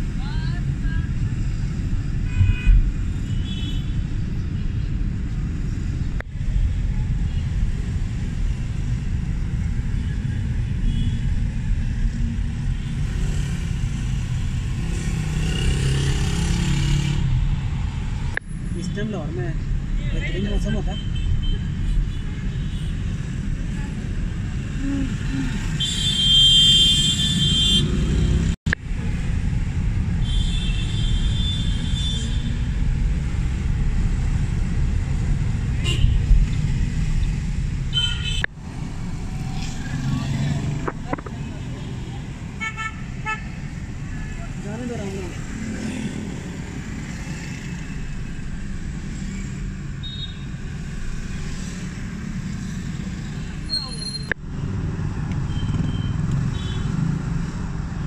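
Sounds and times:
people talking on street: 0.0s - 26.2s, 27.0s - 49.6s, 50.9s - 58.0s
traffic engines rumbling: 0.0s - 58.0s
vehicle horns honking: 25.8s - 28.4s, 35.8s - 36.3s, 37.9s - 38.5s.

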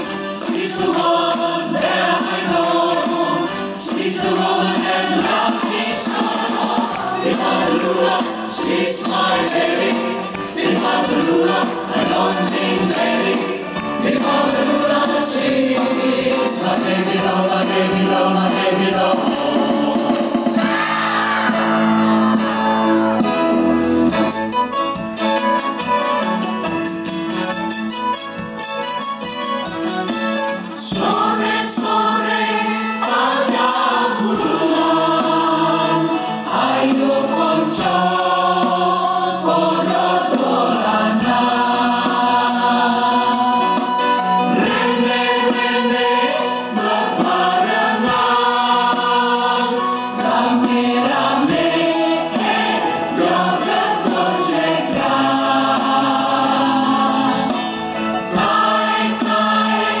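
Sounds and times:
choir singing in harmony: 0.0s - 24.4s, 30.7s - 60.0s.

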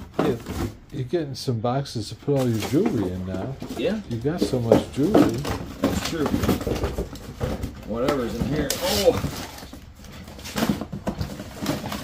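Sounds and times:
objects rummaged in cardboard box: 0.0s - 0.8s, 2.4s - 12.0s.

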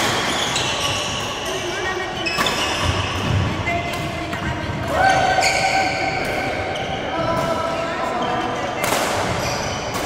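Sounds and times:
shoes squeaking on court floor: 0.0s - 10.0s
racket hitting shuttlecock: 8.8s - 10.0s.

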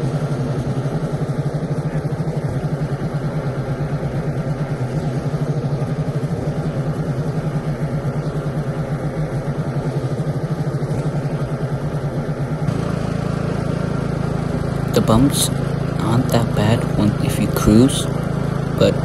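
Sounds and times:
lawn mower engine running: 10.8s - 19.0s.

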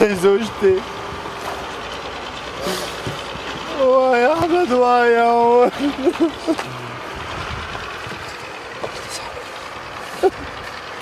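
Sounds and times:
low rumble: 5.7s - 10.7s
man sobbing cry: 10.1s - 10.6s.

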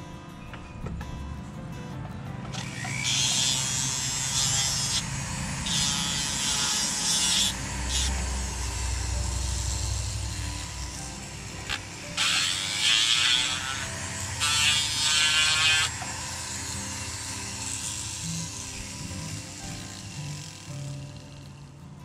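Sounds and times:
rotary carving tool whine: 0.0s - 22.0s
burr grinding wood: 2.0s - 22.0s.

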